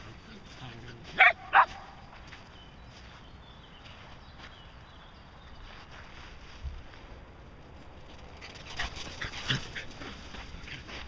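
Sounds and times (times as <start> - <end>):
dog barking: 1.2 - 2.0.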